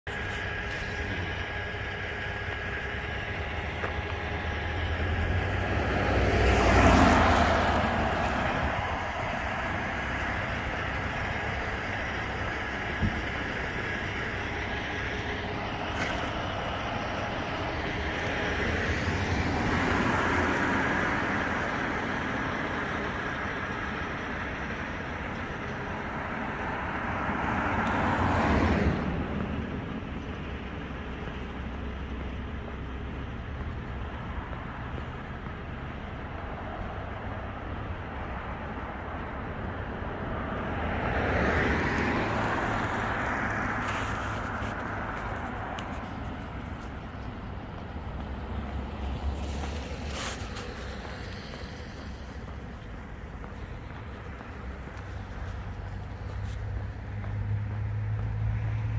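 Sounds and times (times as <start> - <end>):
steady traffic hum: 0.0 - 58.9
vehicles passing on damp road: 0.0 - 58.9.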